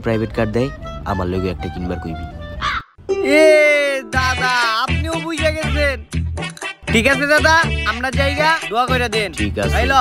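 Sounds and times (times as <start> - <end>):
background music: 0.0 - 10.0
crow cawing: 2.6 - 3.0.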